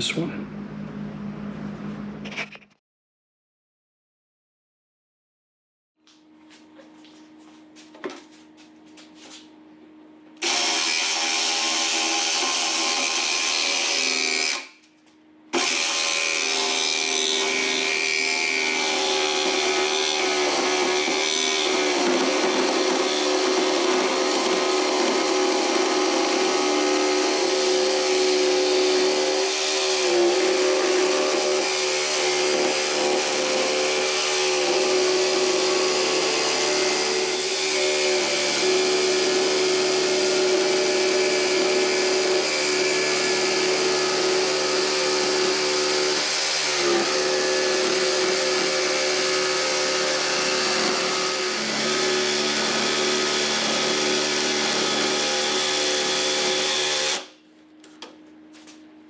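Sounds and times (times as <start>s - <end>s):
jigsaw cutting wood: 10.4s - 14.8s, 15.5s - 57.3s.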